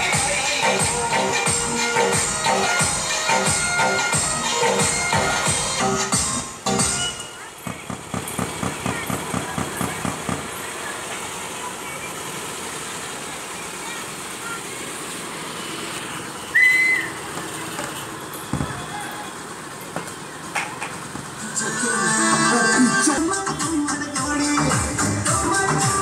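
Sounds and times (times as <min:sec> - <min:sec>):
rapid rhythmic beating: 0:00.0 - 0:10.7
vehicle engines: 0:00.0 - 0:26.0
indistinct voices: 0:06.7 - 0:26.0
short shrill whistle: 0:16.4 - 0:17.2.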